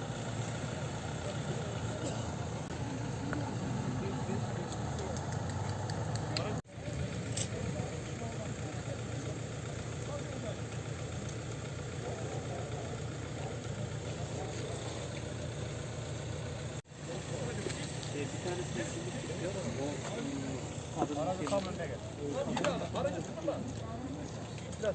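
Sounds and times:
vehicle engine idling: 0.0s - 24.9s
people talking indistinctly: 1.1s - 15.7s, 17.0s - 24.9s.

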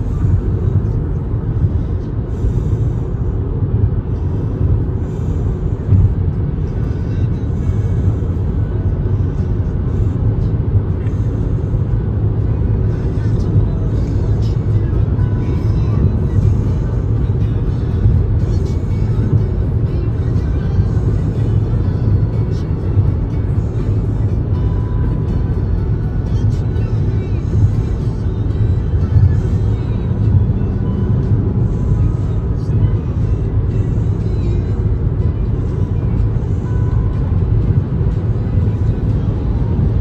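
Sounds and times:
music playing: 0.0s - 40.0s
road and engine rumble in car: 0.0s - 40.0s.

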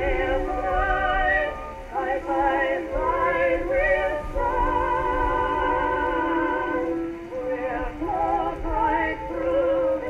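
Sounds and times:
singer with heavy vibrato: 0.0s - 10.0s.

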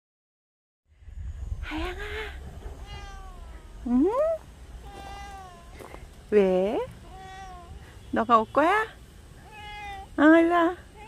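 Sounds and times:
cat meowing: 2.8s - 3.9s, 4.8s - 5.8s, 7.0s - 7.8s, 9.4s - 10.2s
woman's questioning voice: 3.8s - 4.4s.

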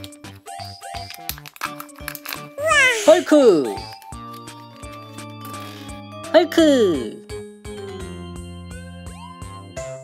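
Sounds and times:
bouncy background music: 0.0s - 10.0s
foil seal crinkling: 1.0s - 2.6s.

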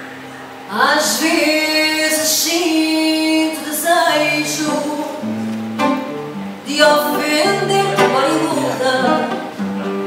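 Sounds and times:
acoustic guitar: 0.0s - 10.0s
woman singing through a microphone: 0.7s - 5.3s, 6.6s - 9.6s.

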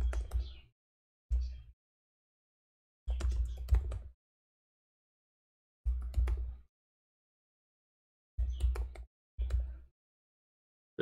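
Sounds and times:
computer keyboard typing: 3.1s - 4.1s, 5.9s - 6.5s, 8.5s - 9.7s.

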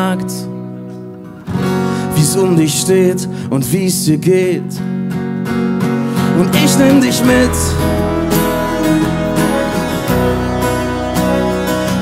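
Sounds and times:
strummed acoustic guitars: 0.0s - 12.0s
bass line: 6.2s - 12.0s.

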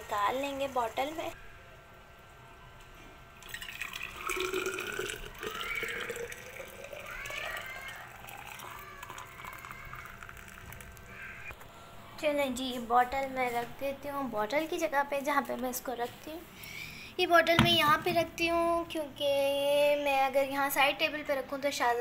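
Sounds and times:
water pouring into flask: 3.4s - 11.1s.

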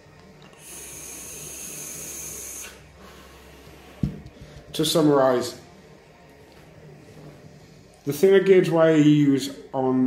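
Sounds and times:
vape draw hiss: 0.6s - 3.7s.

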